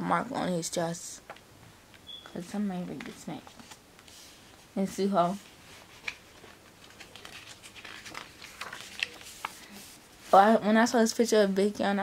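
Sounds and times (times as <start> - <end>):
paper pages rustling: 2.9 - 4.4, 5.3 - 10.5.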